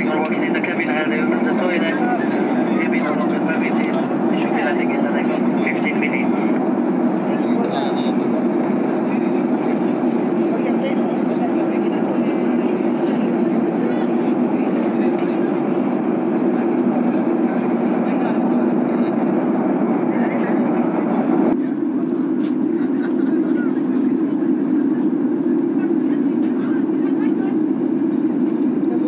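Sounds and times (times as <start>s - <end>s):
jet airliner cabin drone: 0.0s - 29.0s.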